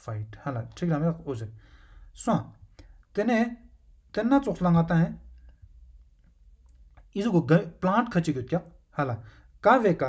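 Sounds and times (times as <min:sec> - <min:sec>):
person speaking: 0:00.0 - 0:05.5, 0:06.6 - 0:10.0.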